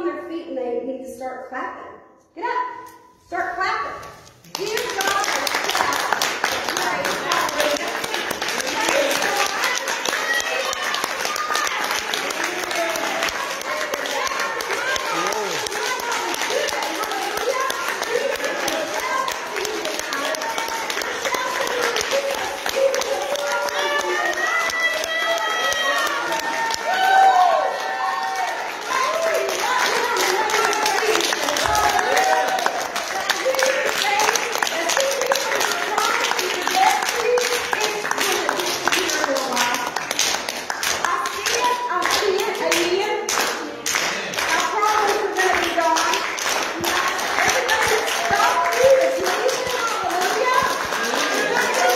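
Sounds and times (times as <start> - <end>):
congregation clapping: 4.4 - 51.9.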